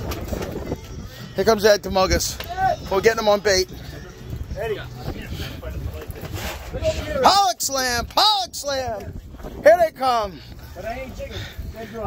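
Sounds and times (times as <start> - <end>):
wind buffeting microphone: 0.0 - 12.0
faint voices: 0.6 - 12.0.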